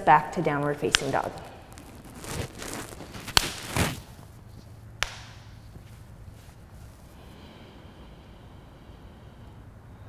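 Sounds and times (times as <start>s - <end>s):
bare feet tapping on yoga mat: 0.8s - 7.2s.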